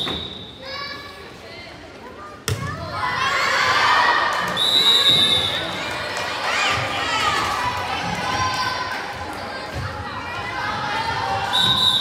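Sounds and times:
children shouting and cheering: 5.7 - 11.5.

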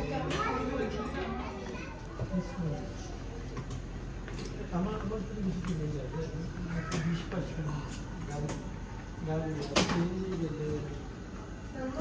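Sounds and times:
children's voices: 0.0 - 3.5, 6.5 - 7.7
people talking: 0.0 - 3.5.

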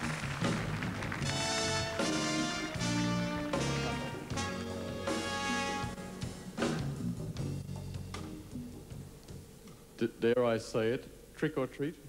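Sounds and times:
brass band music: 0.0 - 7.9.

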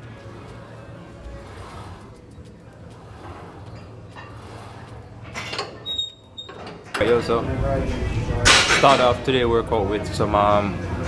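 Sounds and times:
machine carriage sliding on rails: 0.0 - 9.4
high squeak: 3.2 - 6.9.

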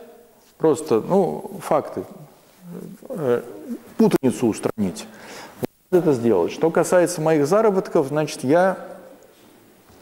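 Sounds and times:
man speaking: 0.6 - 5.2, 5.9 - 9.1.

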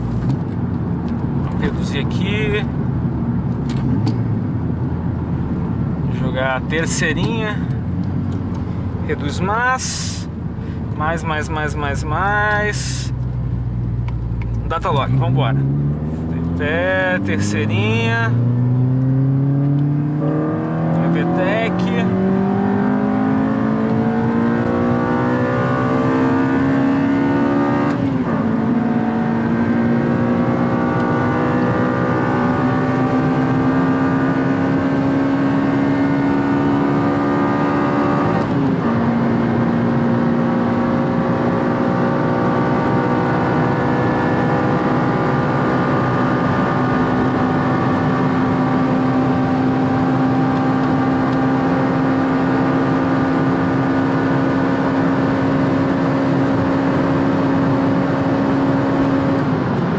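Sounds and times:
car engine accelerating with gear shifts: 0.0 - 59.9.

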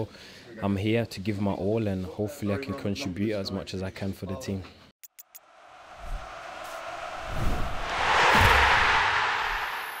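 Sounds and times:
rushing noise swell: 5.4 - 10.0
low booms: 5.6 - 10.0.

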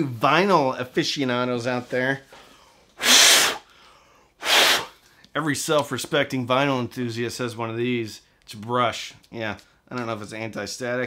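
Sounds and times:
man blowing puffs of breath: 2.3 - 5.3.

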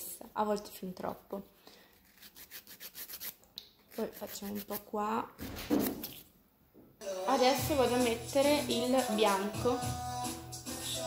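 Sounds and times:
nail file rubbing fingernails: 2.0 - 6.3.

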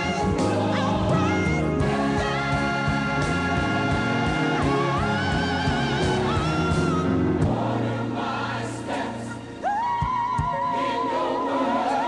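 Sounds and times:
bass and drums: 0.0 - 7.8
choir singing gospel music: 0.0 - 12.0.

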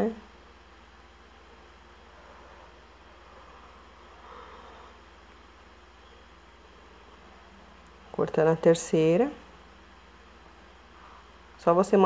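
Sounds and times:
background hiss: 0.0 - 12.0
low hum: 0.0 - 12.0.

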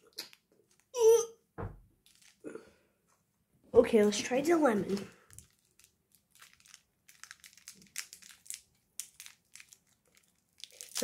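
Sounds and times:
hard candy being chewed: 2.0 - 2.6, 5.0 - 11.0.

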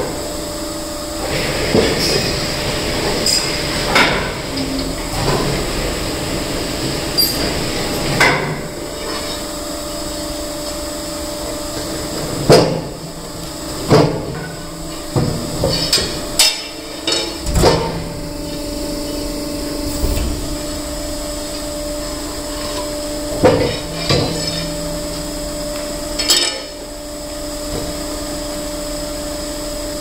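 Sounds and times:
hydraulic stone splitter humming: 1.0 - 28.1.

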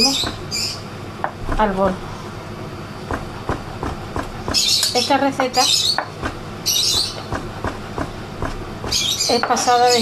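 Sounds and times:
knife chopping on wooden board: 3.1 - 4.8, 6.0 - 9.1.

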